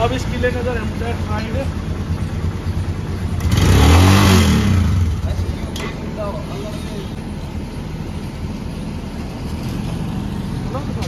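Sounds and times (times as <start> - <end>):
motorcycle engine idling and revving: 0.0 - 11.0.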